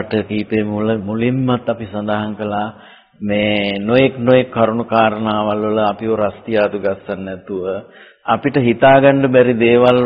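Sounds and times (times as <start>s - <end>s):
elderly man chanting: 0.0s - 10.0s.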